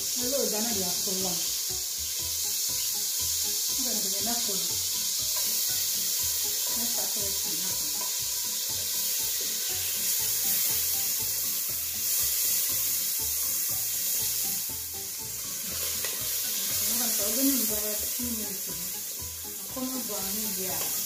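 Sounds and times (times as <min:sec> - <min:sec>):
chilli sizzling in butter: 0:00.0 - 0:21.0.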